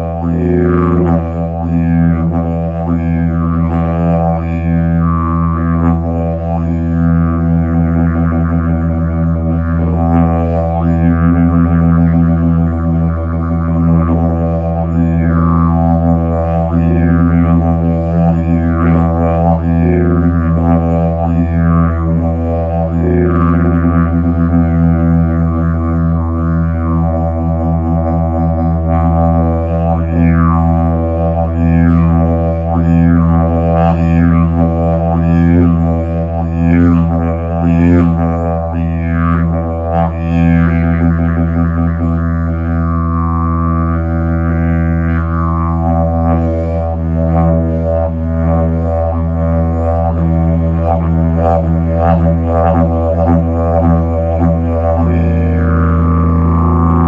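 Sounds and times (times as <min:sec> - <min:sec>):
didgeridoo droning: 0:00.0 - 0:57.0.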